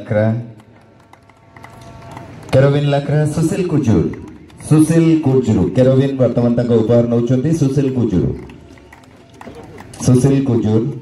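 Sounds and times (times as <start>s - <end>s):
man speaking over public address: 0.0s - 0.7s, 2.4s - 8.7s, 9.5s - 11.0s.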